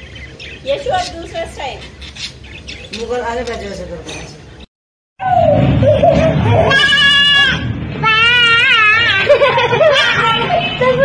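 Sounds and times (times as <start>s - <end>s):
young child crying: 5.2s - 11.0s.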